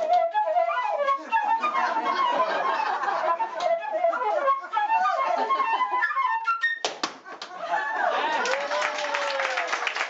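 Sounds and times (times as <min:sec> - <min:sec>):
flute playing fast runs: 0:00.0 - 0:06.9.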